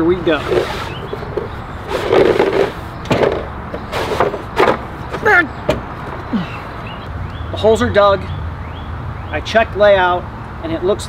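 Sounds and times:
sleeve scraping along wooden post: 0.2 - 6.7.

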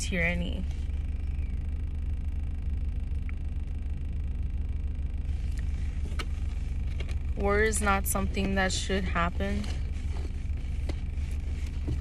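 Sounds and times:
car engine rumble inside cabin: 0.0 - 12.0.

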